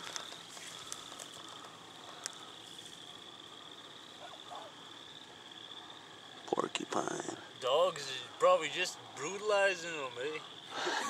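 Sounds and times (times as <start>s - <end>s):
night insects trilling: 0.0s - 11.0s.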